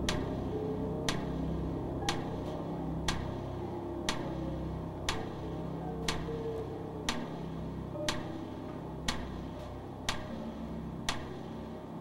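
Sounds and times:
countdown timer ticking: 0.0s - 11.7s
low sustained music bed: 0.0s - 12.0s.

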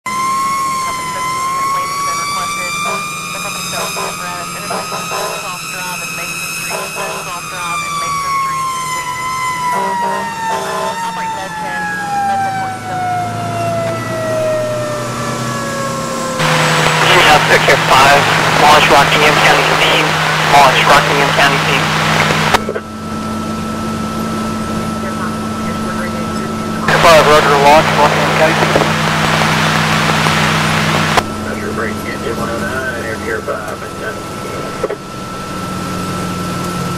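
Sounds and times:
fire engine siren: 0.1s - 36.9s
radio voices: 0.8s - 13.2s, 16.4s - 23.0s, 24.7s - 35.0s
high whine: 13.7s - 36.9s
radio click: 16.4s - 22.8s.

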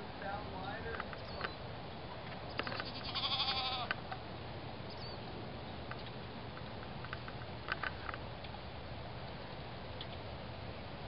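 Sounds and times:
goat bleating: 2.7s - 4.0s.

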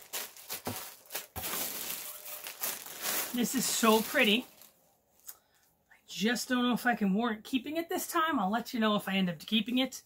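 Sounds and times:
plastic bag crinkling: 0.0s - 4.8s.

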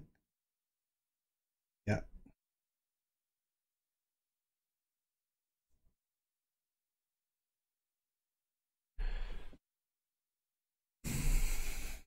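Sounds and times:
person breathing out: 11.0s - 12.0s.

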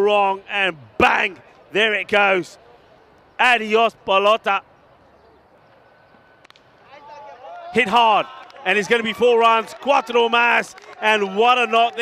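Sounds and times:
open field ambience: 0.0s - 12.0s.

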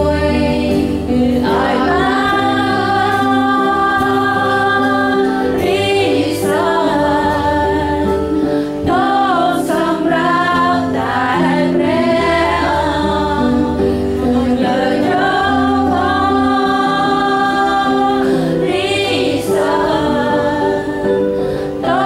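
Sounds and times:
sustained instrumental chords: 0.0s - 22.0s
voices singing worship song: 0.0s - 22.0s.

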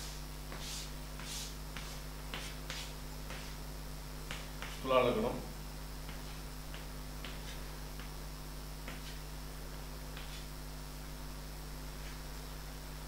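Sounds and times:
chalk tapping on blackboard: 0.0s - 3.6s, 4.2s - 4.8s, 6.0s - 8.2s, 8.8s - 9.2s, 10.1s - 10.5s.

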